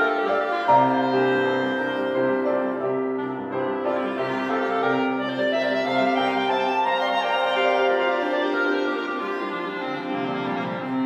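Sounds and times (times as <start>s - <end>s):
clarinet: 0.0s - 11.0s
piano: 0.0s - 11.0s.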